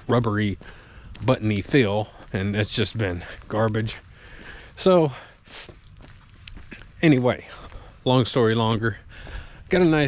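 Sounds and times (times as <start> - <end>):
footsteps outdoors: 0.0 - 10.0.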